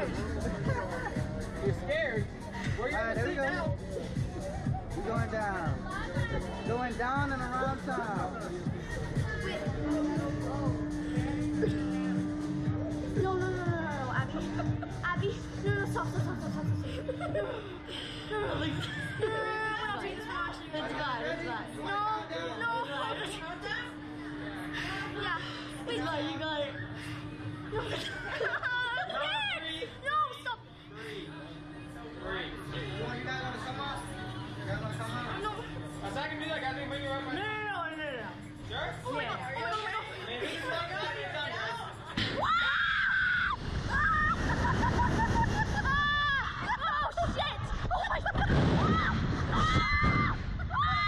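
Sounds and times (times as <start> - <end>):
steady hum: 0.0 - 50.9
young women chattering: 5.7 - 6.7, 7.7 - 32.7
rushing wind: 43.5 - 51.0.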